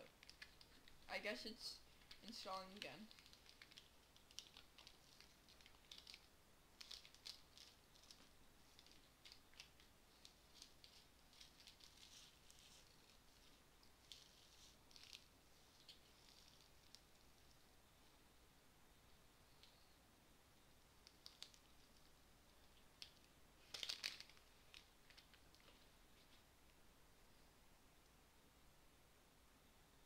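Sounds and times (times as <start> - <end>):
faint room hiss: 0.0 - 30.0
rustling: 1.8 - 18.2, 20.6 - 27.4.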